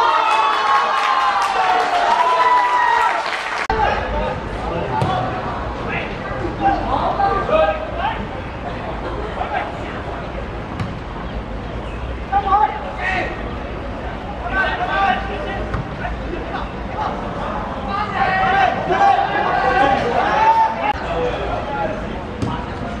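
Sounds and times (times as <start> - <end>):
voices shouting: 14.2 - 21.6.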